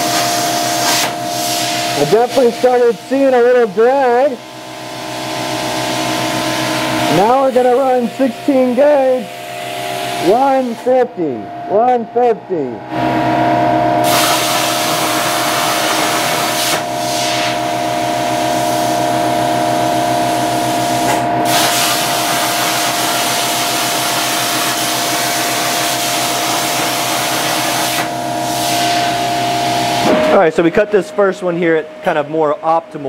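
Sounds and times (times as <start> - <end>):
plasma torch arc hiss: 0.0 - 2.5, 14.0 - 18.9, 20.9 - 29.2
steady machine hum: 0.0 - 33.0.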